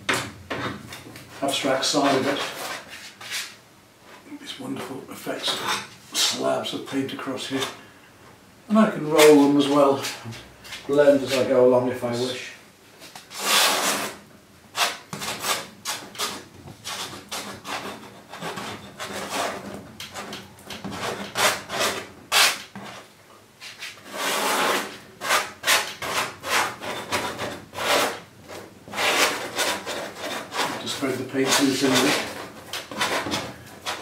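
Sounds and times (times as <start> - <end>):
knife scraping paint on canvas: 2.0 - 3.6, 13.2 - 14.2, 14.8 - 34.0.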